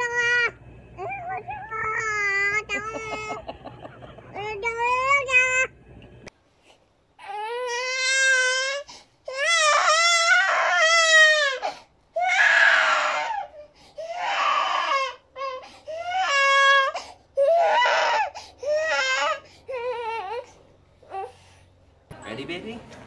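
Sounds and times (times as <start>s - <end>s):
baby crying: 0.0s - 3.4s, 7.2s - 20.5s.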